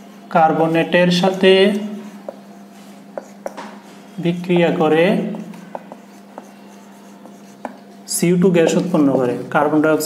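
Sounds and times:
marker writing on a whiteboard: 0.0s - 9.4s.

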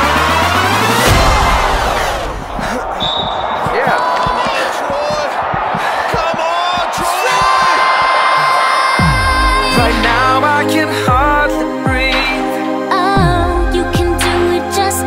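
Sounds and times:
background music: 0.0s - 3.2s, 8.9s - 15.0s
spectators talking and cheering: 0.2s - 10.4s.

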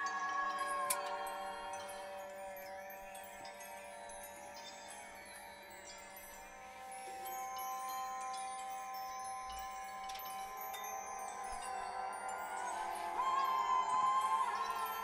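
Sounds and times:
high tinkling chime notes: 0.0s - 15.0s.

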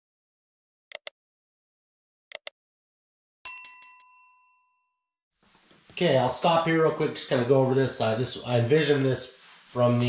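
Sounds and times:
faint room noise: 5.4s - 10.0s.

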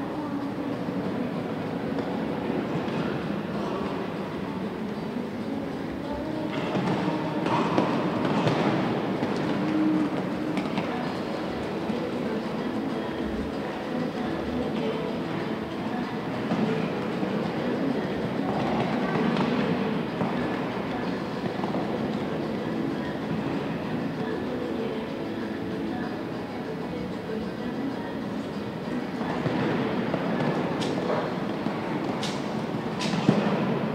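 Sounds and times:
crowd murmur: 0.0s - 33.9s.

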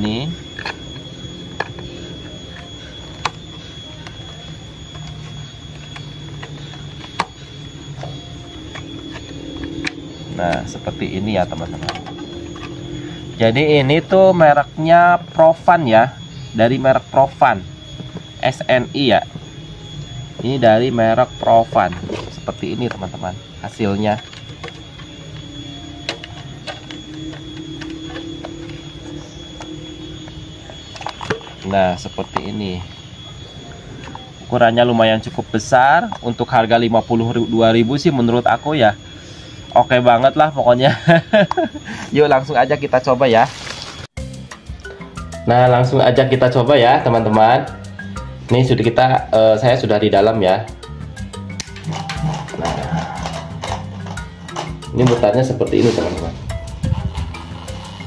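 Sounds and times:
steady low hum: 0.0s - 45.6s
faint steady high tone: 0.0s - 58.0s.

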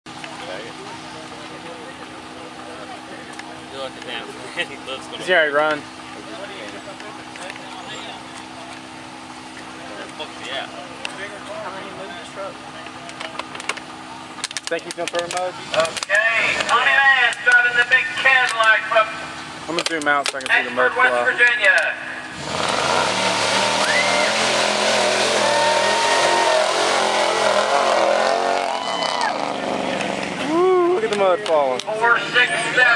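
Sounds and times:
engine hum: 0.0s - 32.9s
faint crowd noise: 0.1s - 22.3s
man talking: 14.7s - 22.1s
truck engine revving hard: 22.1s - 30.8s.

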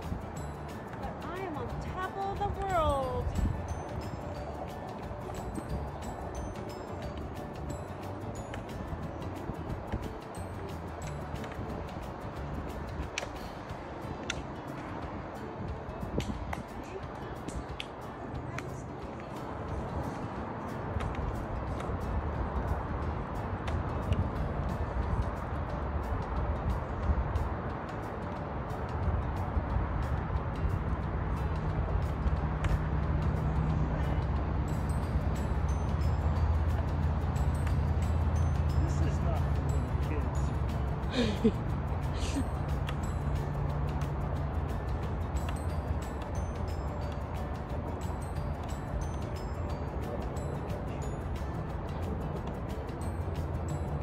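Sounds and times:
background music with bass: 0.0s - 54.0s.

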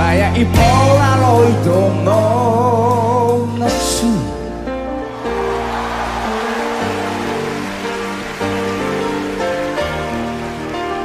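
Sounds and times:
rock band playing chords: 0.0s - 11.0s.

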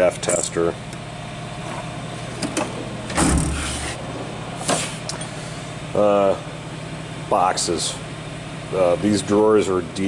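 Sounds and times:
low hum: 0.9s - 8.4s.

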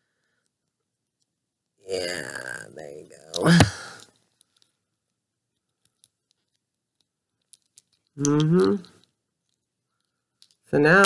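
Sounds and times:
faint plastic clicks: 3.3s - 10.7s.

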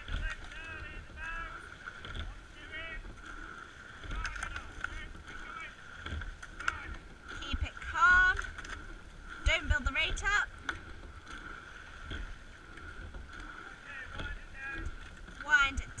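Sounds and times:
oars working water: 0.0s - 16.0s.

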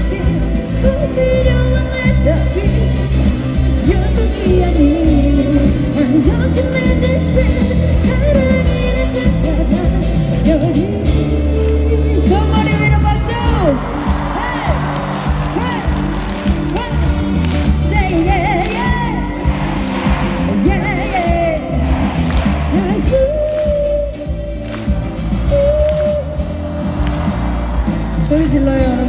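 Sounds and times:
woman singing pop ballad: 0.0s - 14.8s, 15.5s - 19.5s, 20.6s - 21.8s, 22.7s - 24.5s, 28.2s - 29.0s
live band playing: 0.0s - 29.0s.

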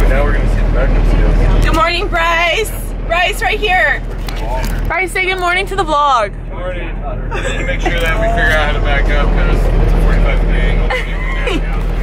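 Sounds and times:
bus engine and road noise: 0.0s - 12.0s
passengers talking: 0.0s - 12.0s.

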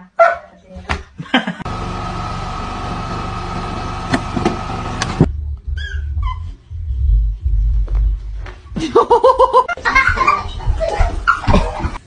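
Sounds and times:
vehicle engine running: 1.6s - 5.3s
low rumbling handling noise: 1.6s - 6.2s.

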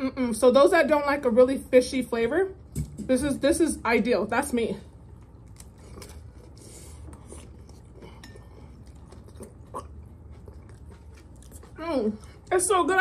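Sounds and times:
chewing with mouth clicks: 5.0s - 13.0s.

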